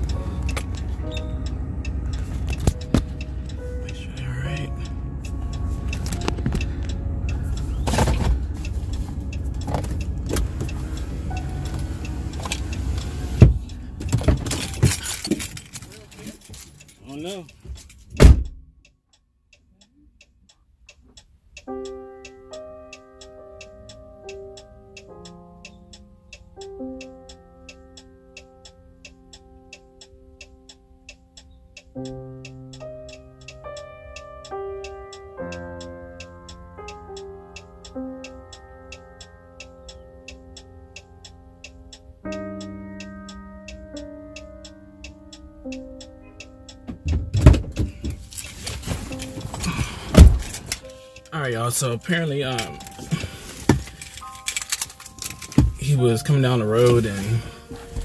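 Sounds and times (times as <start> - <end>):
music with ticking beat: 0.0 - 14.6, 18.7 - 58.0.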